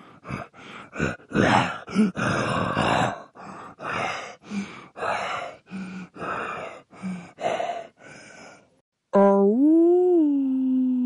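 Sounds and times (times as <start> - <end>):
rough breathy grunt: 0.0 - 8.7
person breathing: 0.0 - 8.8.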